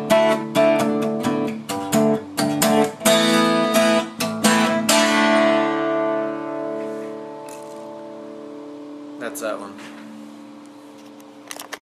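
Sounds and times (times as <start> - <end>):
acoustic guitar chord ringing: 0.0 - 11.1.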